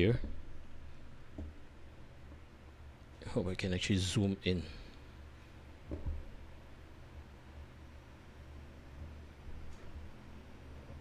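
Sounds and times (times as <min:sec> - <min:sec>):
computer cooling fans humming: 0:00.0 - 0:11.0.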